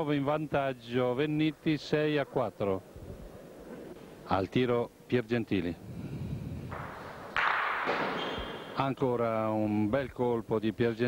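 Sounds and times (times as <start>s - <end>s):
bocce ball strike: 6.7s - 8.7s.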